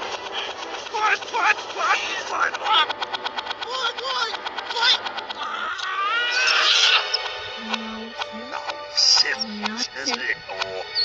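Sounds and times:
reversed music: 0.0s - 11.0s
high squealing cry: 5.4s - 7.2s
low steady note: 7.2s - 10.6s.

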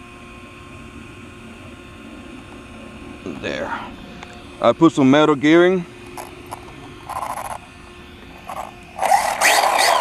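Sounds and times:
faint steady hum: 0.0s - 10.0s
toy car electric motor whirring: 6.0s - 7.7s, 8.4s - 10.0s.

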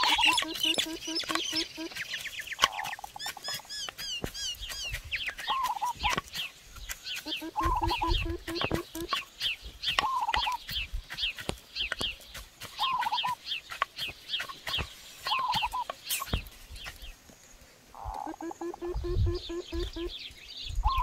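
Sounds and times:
bird warbling call: 0.0s - 6.2s, 7.1s - 9.3s, 9.9s - 10.6s, 15.2s - 16.3s, 18.0s - 20.2s
pestle pounding in clay mortar: 0.0s - 15.8s
birds chirping: 0.0s - 21.0s.

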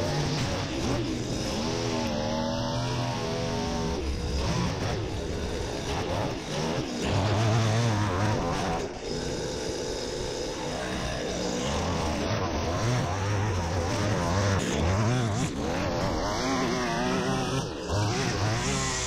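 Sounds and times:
string trimmer cutting grass: 0.0s - 19.0s.

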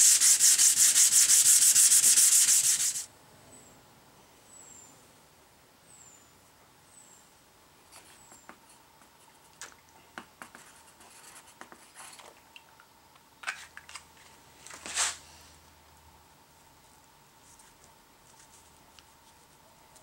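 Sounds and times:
sandpaper rubbing on plastic: 0.0s - 3.1s.

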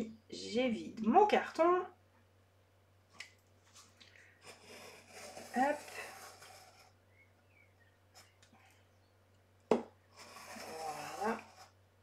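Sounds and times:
knife scraping through cardboard: 4.4s - 7.0s, 10.1s - 11.8s.

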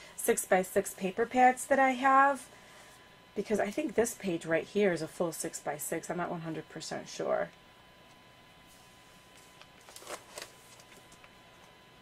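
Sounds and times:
plastic page rustling: 9.3s - 11.7s.

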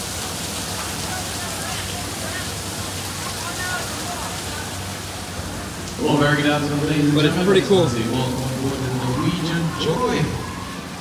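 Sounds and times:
steady outdoor hiss: 0.0s - 11.0s
low hum: 5.5s - 11.0s.

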